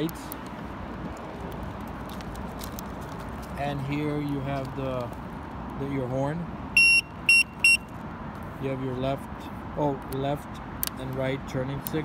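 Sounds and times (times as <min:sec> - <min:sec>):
scooter road rumble: 0:00.0 - 0:12.0.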